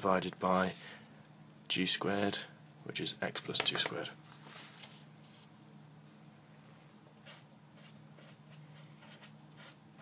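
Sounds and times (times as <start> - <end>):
faint steady low hum: 0.0 - 10.0
marker writing on paper: 7.2 - 10.0.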